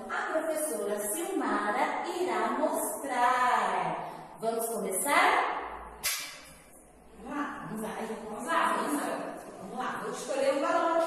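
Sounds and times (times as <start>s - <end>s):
woman speaking: 0.0s - 5.7s, 7.0s - 11.0s
sharp click: 6.0s - 6.6s.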